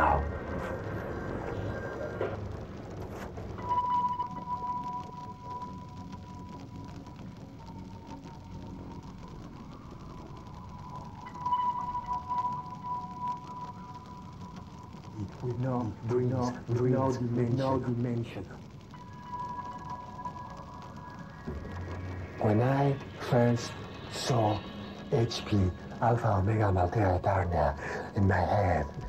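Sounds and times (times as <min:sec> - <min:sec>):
low murky background drone: 0:00.0 - 0:29.0
high held electronic tone: 0:18.9 - 0:26.6.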